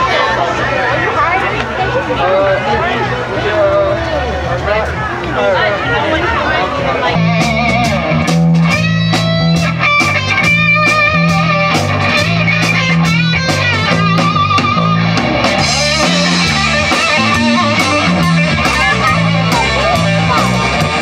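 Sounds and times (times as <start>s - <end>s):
bass line: 0.0s - 21.0s
electric guitar lead: 0.0s - 21.0s
drum kit beat: 7.1s - 21.0s.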